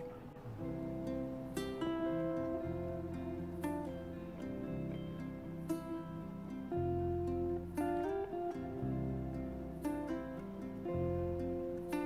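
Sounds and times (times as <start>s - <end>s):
plucked string music: 0.0s - 12.0s.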